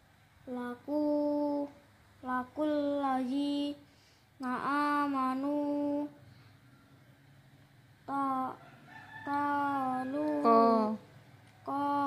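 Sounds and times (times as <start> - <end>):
boy chanting recitation: 0.4 - 6.2, 8.0 - 12.0.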